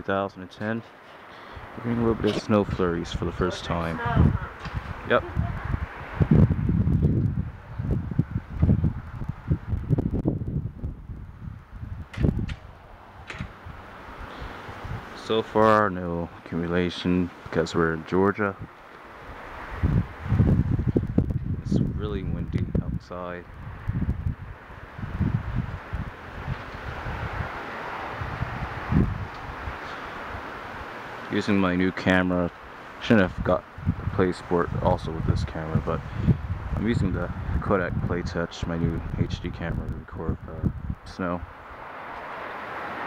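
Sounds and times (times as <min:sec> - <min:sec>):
wind rushing through trees: 0:00.0 - 0:43.0
wind buffeting microphone: 0:01.5 - 0:43.0.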